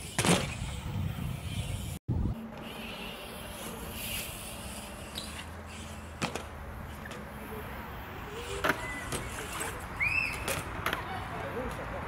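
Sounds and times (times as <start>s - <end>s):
bike tyres rumbling on concrete: 0.0s - 12.0s.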